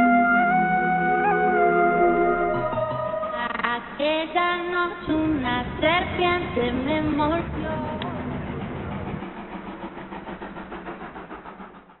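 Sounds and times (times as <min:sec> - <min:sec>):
vehicle engine running: 0:05.1 - 0:11.9.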